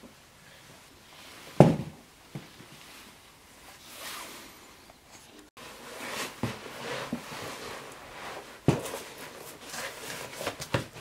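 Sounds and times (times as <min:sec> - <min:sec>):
boot thumping on floor: 0:01.6 - 0:02.5
soft rustle: 0:02.4 - 0:10.8.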